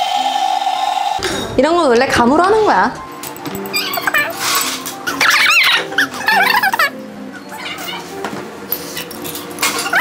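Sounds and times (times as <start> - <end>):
light background music: 1.2 - 10.0
squeaky animal-like warbling: 3.7 - 8.1.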